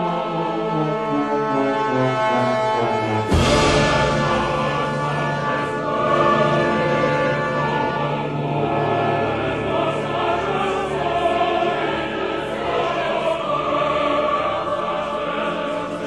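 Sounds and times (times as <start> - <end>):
mixed chorus singing: 0.0 - 2.2, 2.9 - 16.0
symphony orchestra playing: 0.0 - 10.7.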